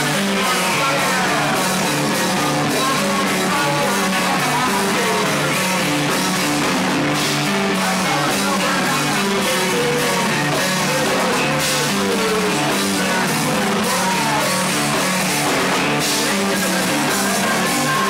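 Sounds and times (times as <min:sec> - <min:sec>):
driving drum beat: 0:00.0 - 0:18.0
electric bass: 0:00.0 - 0:18.0
electric guitar: 0:00.0 - 0:18.0.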